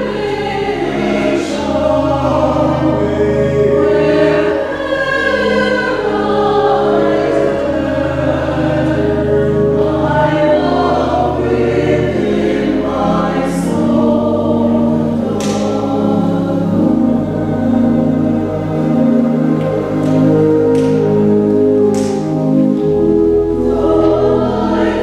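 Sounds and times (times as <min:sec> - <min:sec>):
choir singing in parts: 0:00.0 - 0:25.0
organ bass notes: 0:00.0 - 0:25.0.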